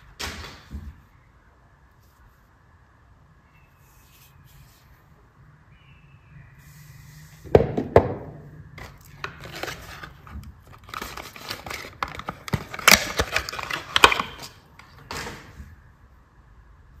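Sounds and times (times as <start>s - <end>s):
paper wrapper crinkling and tearing: 8.8s - 14.6s.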